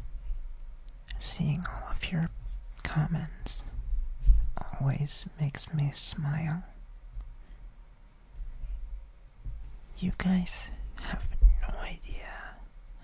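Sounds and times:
person whispering: 1.1 - 3.8, 4.6 - 6.8, 9.9 - 12.7.

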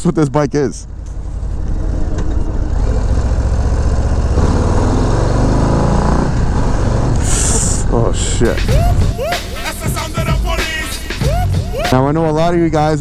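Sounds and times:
motorcycle engine running: 0.8 - 9.2.

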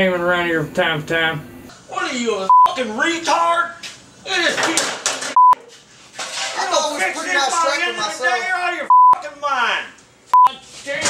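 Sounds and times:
censor bleeps: 2.5 - 2.7, 5.4 - 5.6, 8.9 - 9.2, 10.4 - 10.6.

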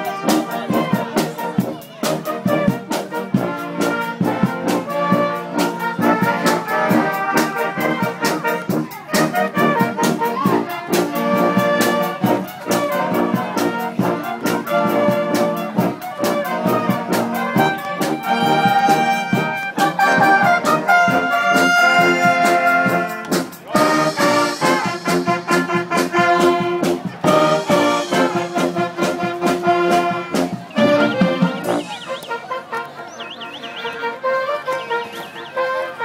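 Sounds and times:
percussion beat: 0.0 - 32.2
brass band playing: 0.0 - 36.0.

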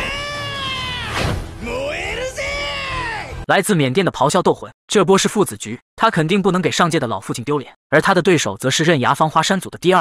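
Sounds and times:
man yelling: 0.0 - 3.4.

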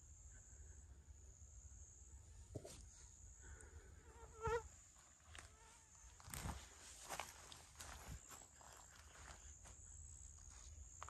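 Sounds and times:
faint high-pitched insect drone: 0.0 - 11.0
flying insect buzzing past: 4.1 - 4.7.

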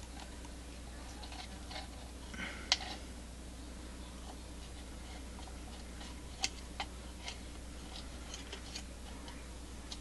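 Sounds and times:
wire clicking and rustling: 4.2 - 10.0.

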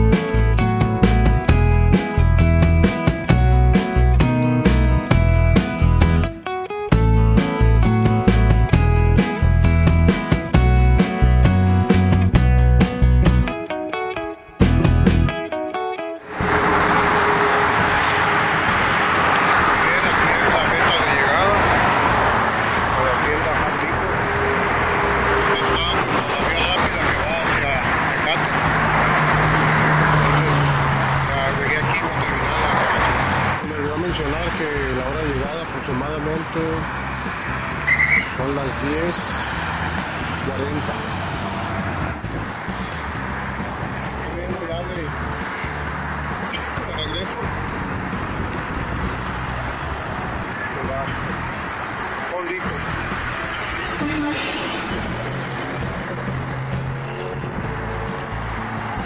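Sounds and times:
car traffic: 0.0 - 59.0
music: 0.0 - 59.0
people's voices: 19.6 - 24.4, 25.1 - 28.9, 30.2 - 36.9, 40.4 - 41.2, 46.5 - 47.6, 53.9 - 55.1.

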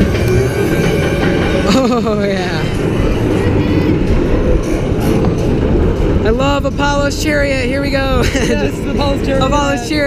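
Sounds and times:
roller coaster lift rumble and rattle: 0.0 - 10.0.

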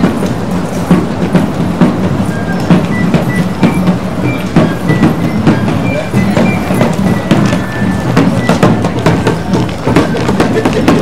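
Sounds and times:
steady drum beat: 0.0 - 11.0.

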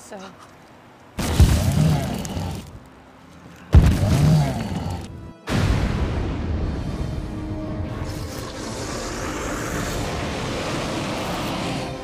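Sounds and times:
fire roaring: 1.2 - 2.8, 7.8 - 12.0.

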